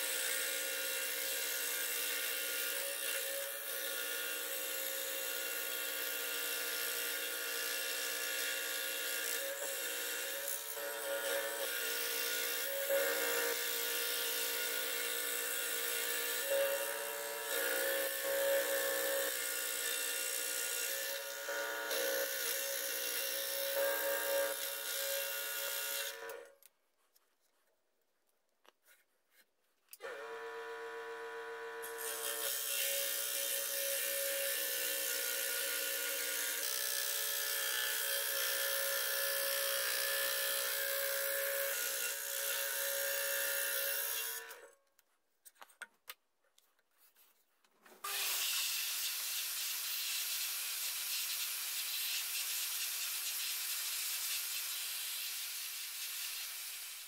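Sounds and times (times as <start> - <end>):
scroll saw cutting wood: 0.0 - 26.7, 29.9 - 44.8, 47.9 - 57.0.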